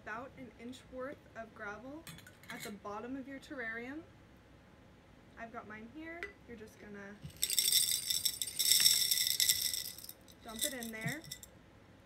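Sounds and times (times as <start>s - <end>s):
gravel rattling into glass jar: 7.2s - 11.5s.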